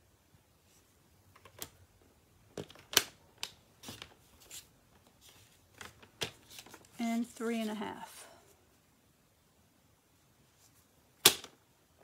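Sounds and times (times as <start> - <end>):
paper rustling: 3.8 - 7.0.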